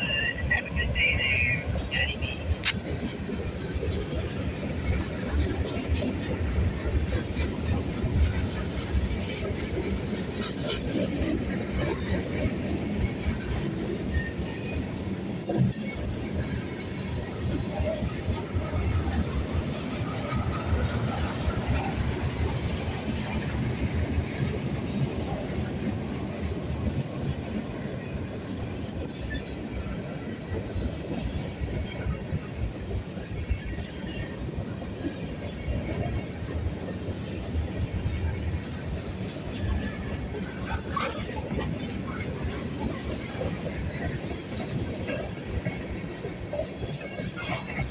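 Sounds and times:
train wheels rumbling and clattering: 0:00.0 - 0:47.9
high wheel squeals: 0:14.0 - 0:15.0, 0:33.3 - 0:34.6.

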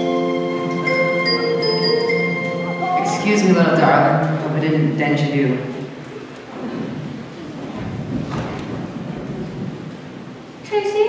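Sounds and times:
person speaking: 0:02.8 - 0:05.9
footsteps on a hollow wooden stage: 0:06.3 - 0:10.6.

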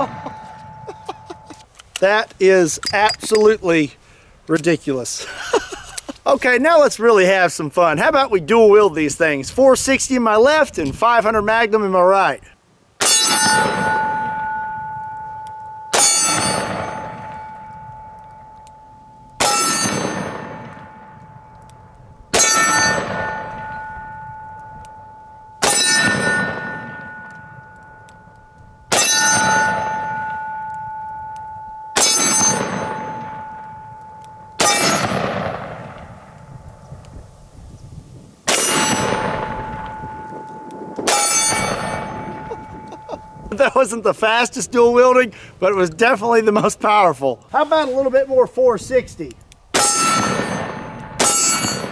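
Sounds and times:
steel target ringing: 0:00.0 - 0:01.6, 0:02.8 - 0:03.6, 0:13.0 - 0:35.7, 0:38.5 - 0:44.1, 0:49.8 - 0:51.9.

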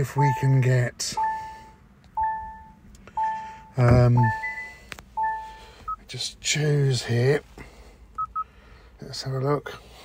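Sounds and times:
car dashboard chime: 0:00.0 - 0:06.1
short high beep: 0:02.2 - 0:06.0.

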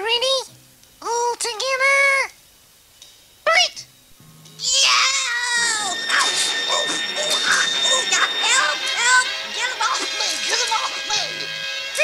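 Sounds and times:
music with held tones: 0:05.6 - 0:12.0.

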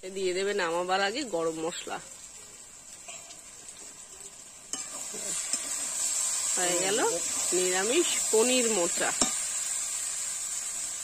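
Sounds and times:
curry sizzling in a pan: 0:00.0 - 0:11.0
metal spatula scraping pan: 0:04.7 - 0:06.1.

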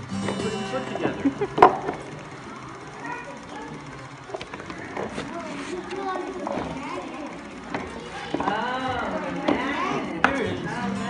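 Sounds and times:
crowd voices with children: 0:00.0 - 0:11.0.

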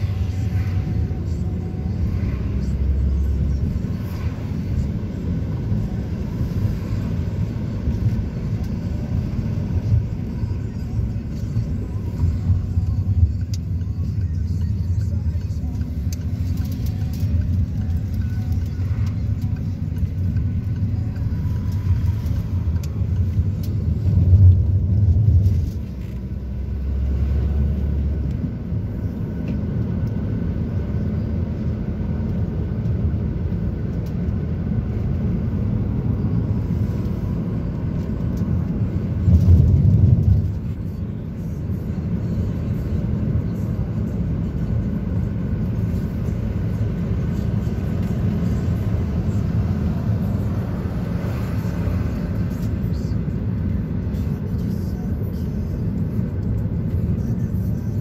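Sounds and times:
vehicle engine and road rumble: 0:00.0 - 0:58.0.

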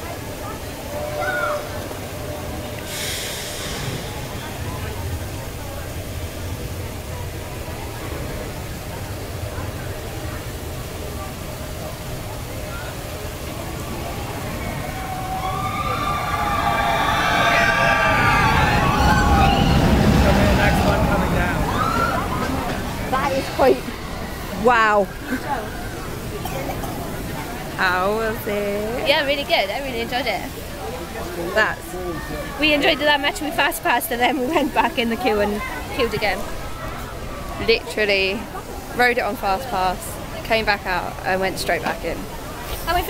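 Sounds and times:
roller coaster rumbling on track: 0:00.0 - 0:43.0
riders screaming: 0:14.1 - 0:25.3.

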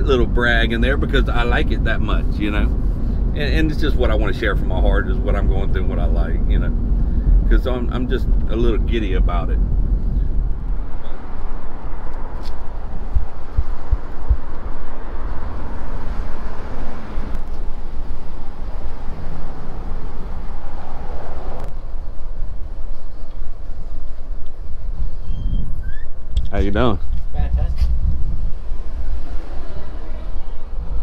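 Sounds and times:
road traffic rushing: 0:00.0 - 0:31.0
wind: 0:00.0 - 0:31.0
low thumps: 0:04.6 - 0:17.8.

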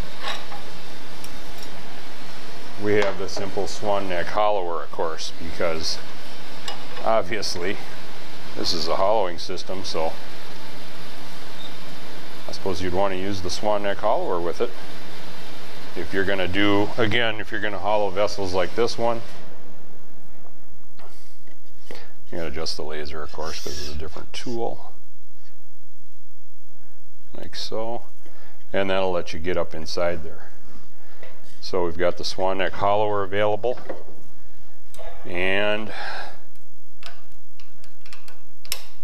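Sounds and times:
workshop hum: 0:00.0 - 0:39.0.

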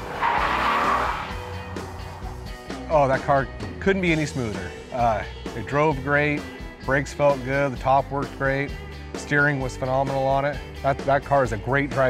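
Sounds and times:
car tyres squealing: 0:00.0 - 0:02.7
background music: 0:00.0 - 0:12.0.

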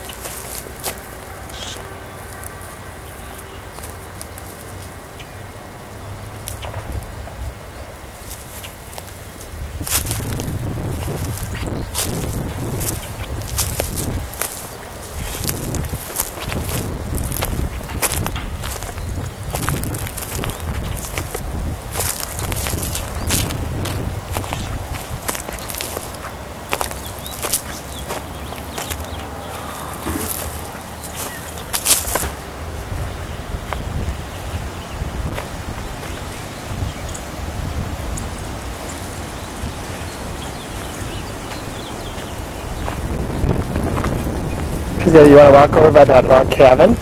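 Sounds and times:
rustles: 0:00.0 - 0:45.5.

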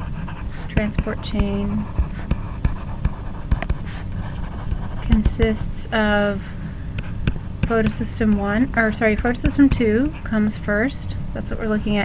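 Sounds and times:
stylus tapping on a tablet screen: 0:00.8 - 0:03.9, 0:04.6 - 0:05.6, 0:07.0 - 0:08.6, 0:09.2 - 0:10.2.

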